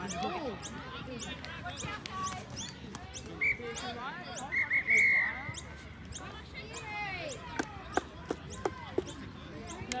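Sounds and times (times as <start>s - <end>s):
faint distant voices: 0.0s - 10.0s.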